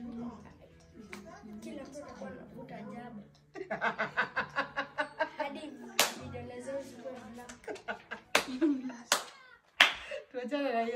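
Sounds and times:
hand clap: 6.0 - 6.3, 7.4 - 10.1.

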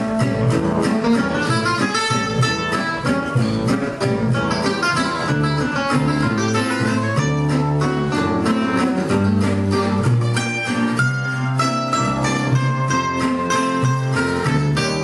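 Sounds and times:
lead acoustic guitar: 0.0 - 15.0
plucked double bass: 0.0 - 15.0
strummed rhythm guitar: 0.0 - 15.0.

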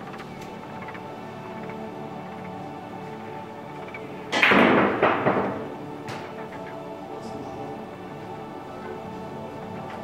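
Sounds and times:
background music: 0.0 - 10.0
billiard balls clacking: 3.8 - 7.4.

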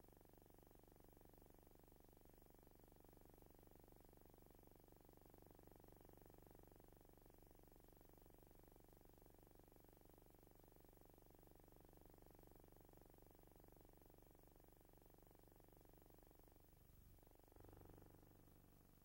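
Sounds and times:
faint low hum: 0.0 - 19.0.

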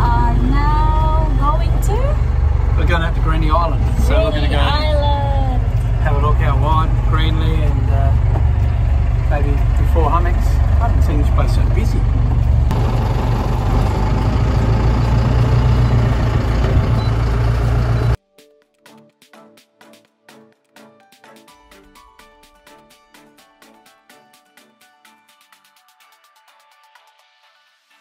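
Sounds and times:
boat engine rumble: 0.0 - 18.2.

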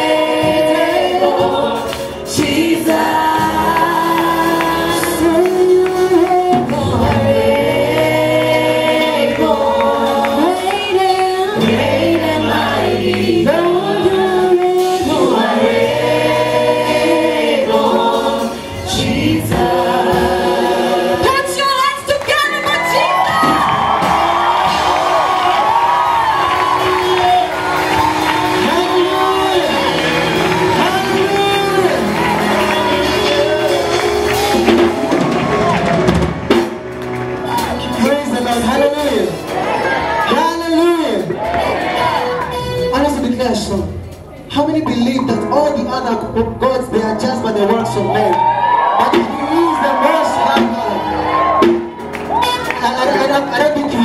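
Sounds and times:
singers singing together: 0.0 - 21.6, 23.8 - 36.8, 37.4 - 42.6
band with drums and bass: 0.0 - 54.0.

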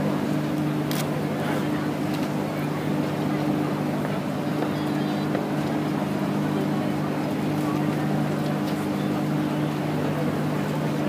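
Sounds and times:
boat engine droning: 0.0 - 11.0
murmur of crowd voices: 0.0 - 11.0.

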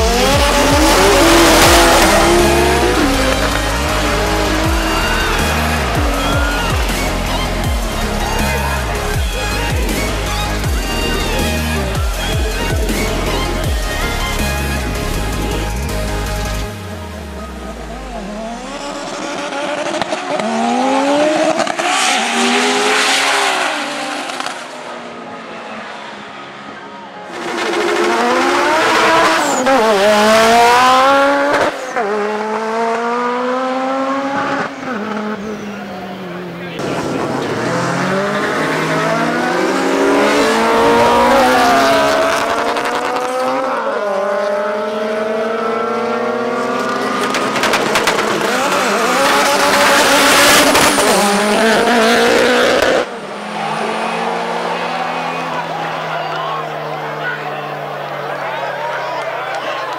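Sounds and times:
car engines revving hard: 0.0 - 59.9.

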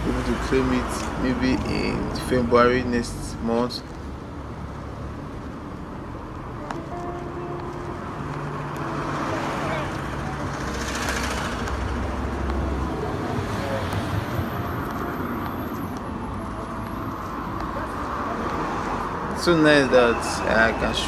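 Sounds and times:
cars driving past: 0.0 - 21.0
vehicle passing close: 4.4 - 21.0.

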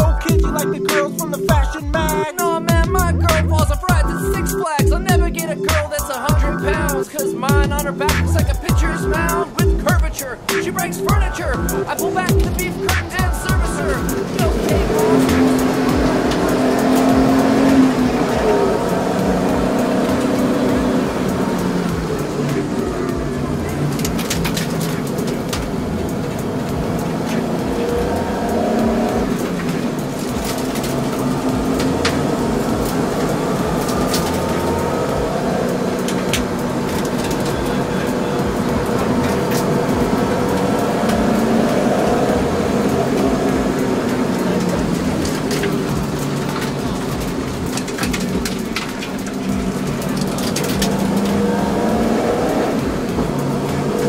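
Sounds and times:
car engine running: 0.0 - 54.0
sharp clicks: 0.0 - 54.0.

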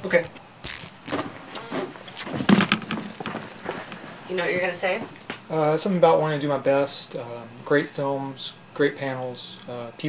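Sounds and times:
camera handling rustling: 0.2 - 1.3, 2.1 - 4.1.

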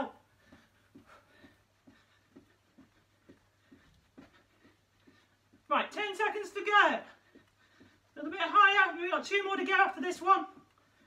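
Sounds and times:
soft thuds of feet on carpet: 0.0 - 5.8, 6.6 - 8.6.

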